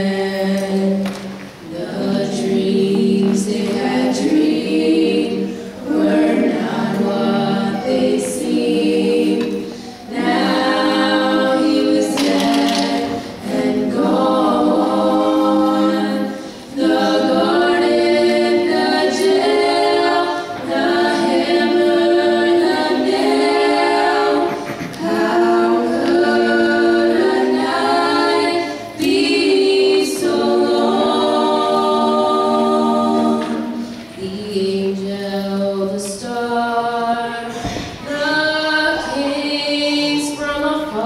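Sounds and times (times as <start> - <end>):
girls singing a cappella: 0.0 - 41.0.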